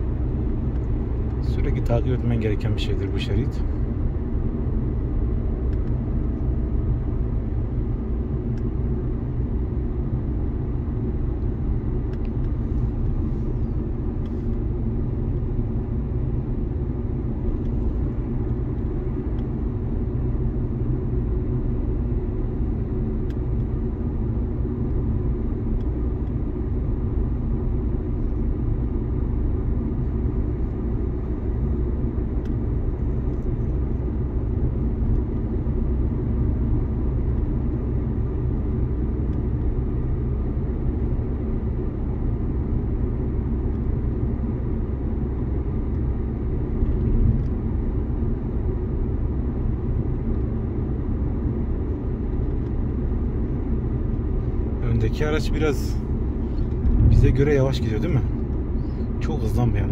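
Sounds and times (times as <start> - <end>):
car engine hum in cabin: 0.0 - 59.9
tyre and road noise: 54.0 - 59.9.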